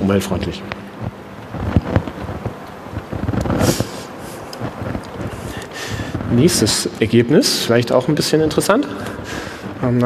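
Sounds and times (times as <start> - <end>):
low rumbling room noise: 0.0 - 10.0.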